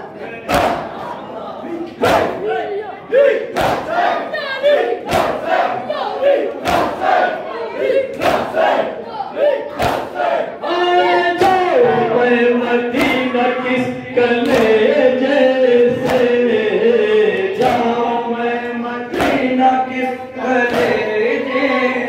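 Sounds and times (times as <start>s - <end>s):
loud group chanting: 0.0s - 22.0s
unison chest-beating strikes: 0.5s - 1.0s, 3.6s - 4.1s, 5.1s - 5.7s, 6.6s - 7.2s, 9.8s - 10.3s, 15.8s - 16.4s, 17.5s - 18.0s, 19.1s - 19.6s, 20.7s - 21.1s.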